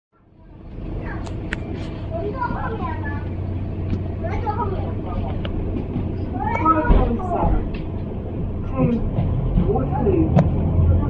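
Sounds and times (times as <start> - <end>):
bus engine drone: 0.2 - 11.0
passengers talking: 0.2 - 11.0.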